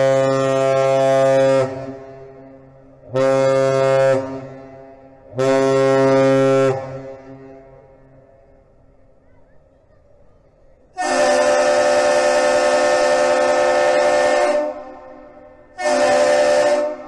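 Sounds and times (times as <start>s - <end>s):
deep ship's horn blasts: 0.0s - 8.7s, 11.0s - 17.0s.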